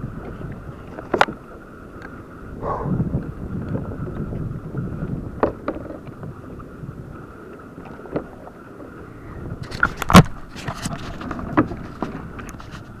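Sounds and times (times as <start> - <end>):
water around kayak: 0.0 - 13.0
wind: 0.0 - 13.0
knocks and clicks on hull: 0.2 - 1.4, 5.1 - 6.7, 7.8 - 8.9, 9.6 - 13.0.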